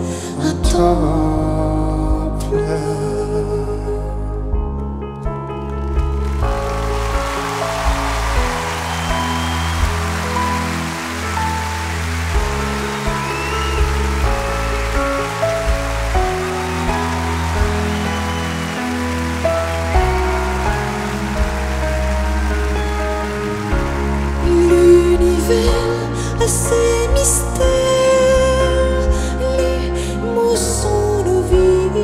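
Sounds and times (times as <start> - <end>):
live pop ballad chords and bass: 0.0 - 32.0.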